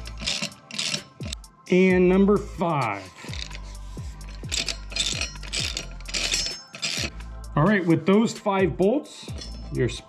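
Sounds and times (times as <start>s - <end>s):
ratchet wrench clicking: 0.0s - 1.4s, 3.3s - 7.2s
music beat: 1.2s - 10.0s.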